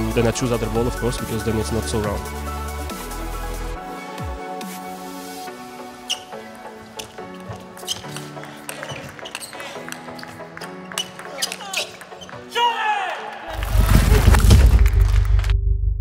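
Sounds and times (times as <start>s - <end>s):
electronic background music: 0.0s - 16.0s
deep bass: 13.5s - 16.0s.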